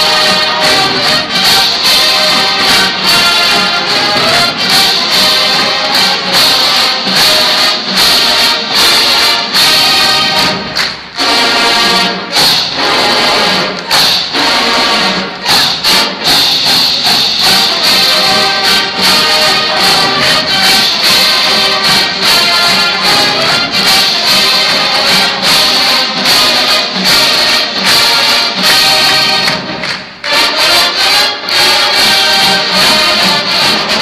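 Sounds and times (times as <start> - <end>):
marching band playing brass: 0.0 - 34.0.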